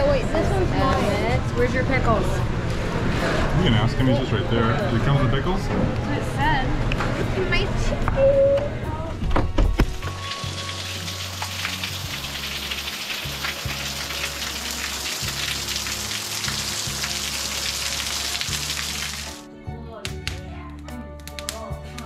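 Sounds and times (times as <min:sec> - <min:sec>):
music with slow bass line: 0:09.9 - 0:22.0
heavy rain pouring: 0:10.0 - 0:19.4.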